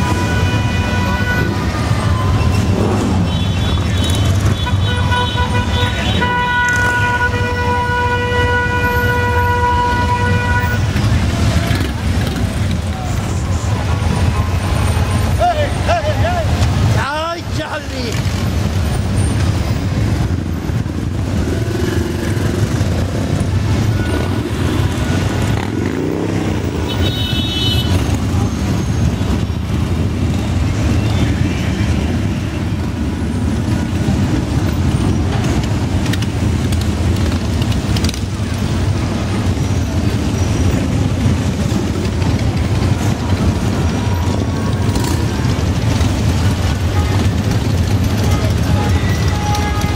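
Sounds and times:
motorcycles rumbling: 0.0 - 49.9
crowd voices: 10.0 - 21.4.

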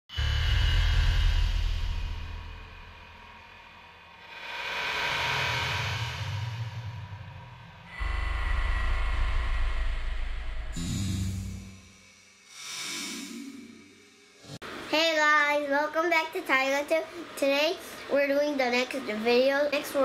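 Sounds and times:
whoosh: 0.1 - 14.6
low bass hit: 0.2 - 4.2, 5.4 - 12.4
faint sustained tones: 0.2 - 14.6.

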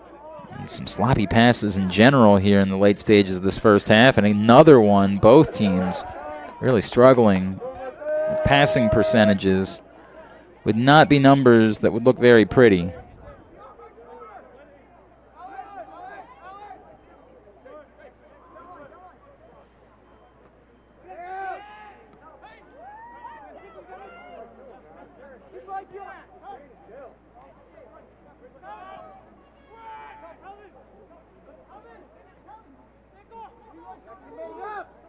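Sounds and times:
distant chatter: 0.0 - 22.8
faint shouts and calls: 7.6 - 10.7.

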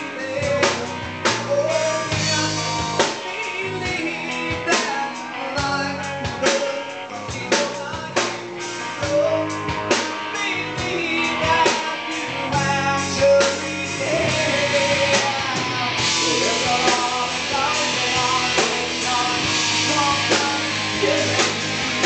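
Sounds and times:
low bass notes: 0.0 - 4.8, 7.1 - 22.0
live rock band playing: 0.0 - 22.0.

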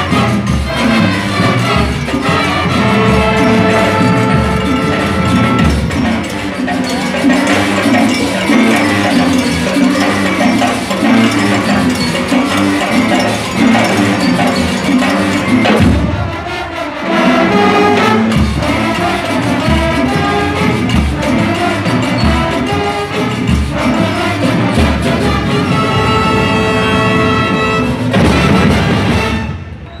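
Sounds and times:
marching brass band playing: 0.0 - 29.9.

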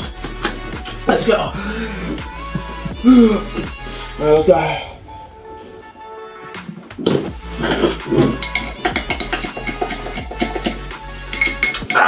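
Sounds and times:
background music: 0.0 - 12.0
metal spoon clinking against glass: 8.4 - 12.0.

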